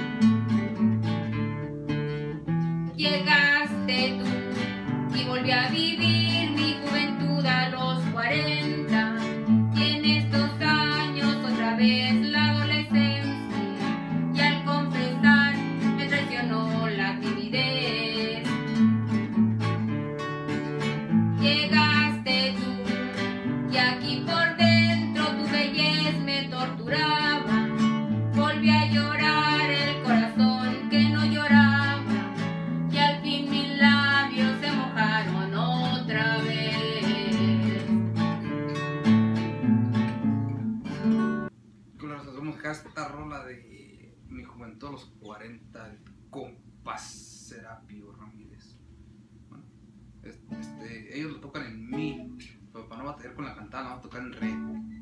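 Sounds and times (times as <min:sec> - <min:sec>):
guitar picking melodic lead: 0:00.0 - 0:41.5, 0:51.8 - 0:52.6
guitar strumming chords: 0:00.0 - 0:41.6, 0:51.8 - 0:52.6.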